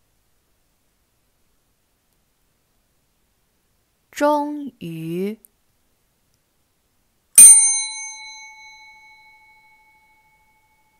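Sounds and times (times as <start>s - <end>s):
bell chime ringing: 7.4s - 10.9s.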